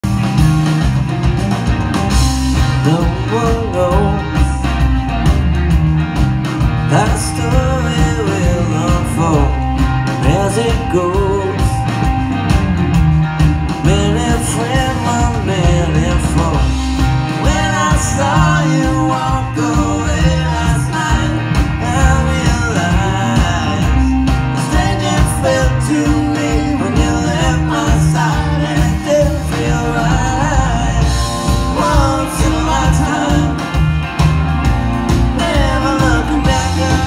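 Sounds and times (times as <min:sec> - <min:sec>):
live rock band: 0:00.0 - 0:37.0
man singing: 0:02.6 - 0:04.8, 0:06.8 - 0:12.1, 0:13.8 - 0:33.9, 0:35.2 - 0:37.0.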